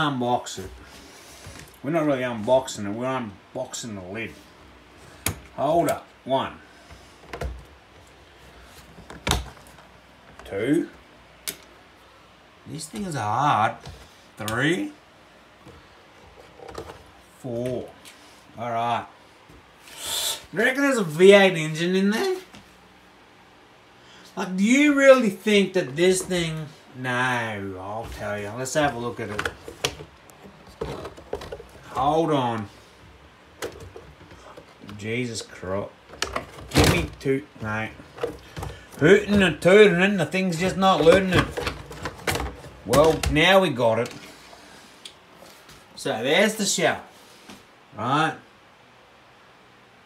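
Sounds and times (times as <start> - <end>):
hands clicking and scraping plastic: 29.2 - 32.7.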